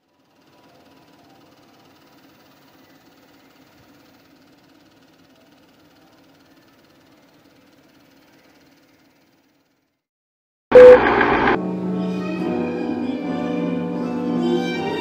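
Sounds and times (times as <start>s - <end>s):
low hum: 10.7s - 11.6s.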